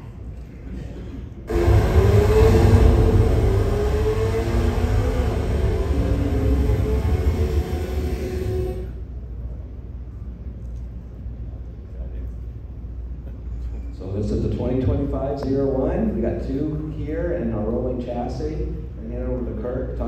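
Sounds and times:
deep rumble with rising tone: 0:01.5 - 0:09.2.

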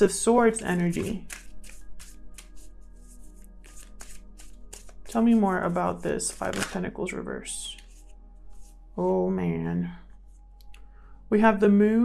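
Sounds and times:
soft background music: 0:00.0 - 0:12.0
cards being shuffled by hand: 0:00.5 - 0:06.8, 0:07.7 - 0:08.7.

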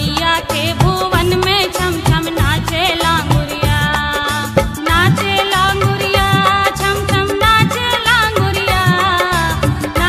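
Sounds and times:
steady drum beat: 0:00.0 - 0:10.0
woman singing folk song: 0:00.0 - 0:10.0.

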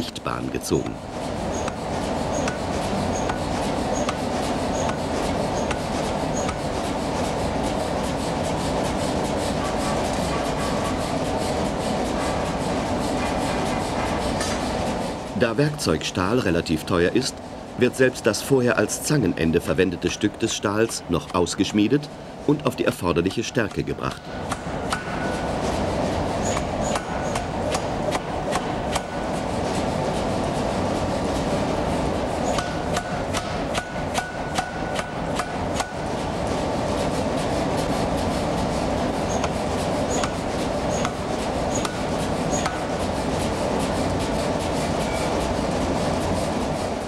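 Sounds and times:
steady background noise: 0:00.0 - 0:47.0
power hammer striking hot steel: 0:32.5 - 0:36.0.

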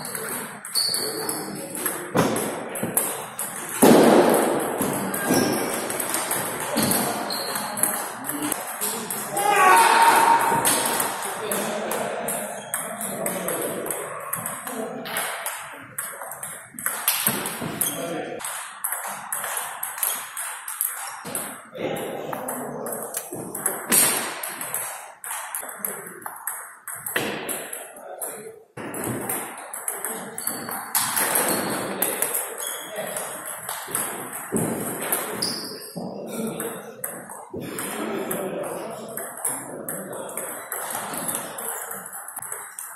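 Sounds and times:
raised voice: 0:09.3 - 0:11.0.

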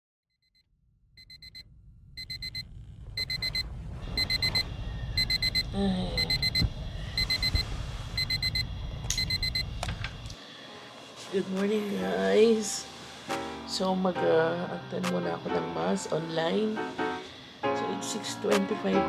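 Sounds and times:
electronic alarm beeping: 0:01.2 - 0:01.6, 0:02.2 - 0:02.6, 0:03.2 - 0:09.8.

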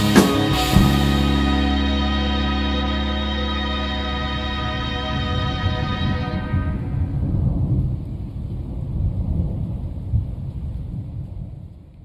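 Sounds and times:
rain: 0:00.0 - 0:12.0
rolling thunder: 0:04.6 - 0:12.0.

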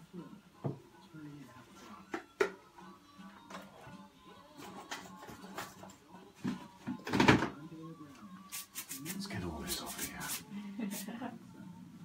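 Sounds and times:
music from a television: 0:00.0 - 0:12.0.

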